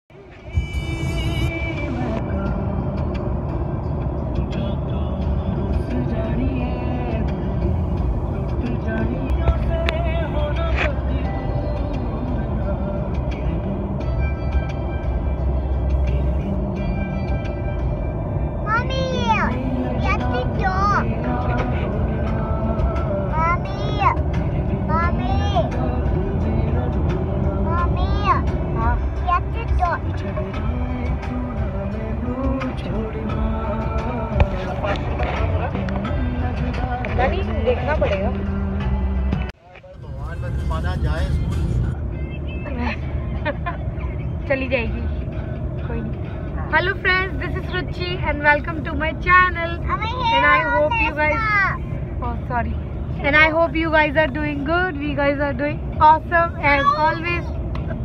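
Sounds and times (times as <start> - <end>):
car road and engine rumble: 0.1 - 58.0.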